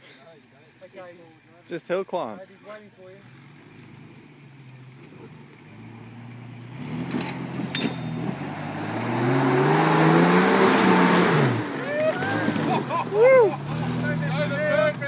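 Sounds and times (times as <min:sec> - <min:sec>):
off-road vehicle engine under load: 0:00.0 - 0:15.0.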